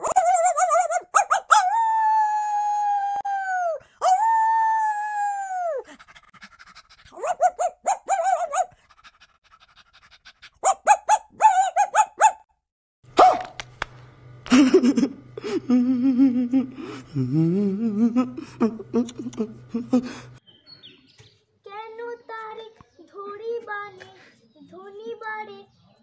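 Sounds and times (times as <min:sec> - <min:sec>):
girl howling like a dog: 0:00.0 - 0:05.9
girl yelping: 0:00.0 - 0:05.9.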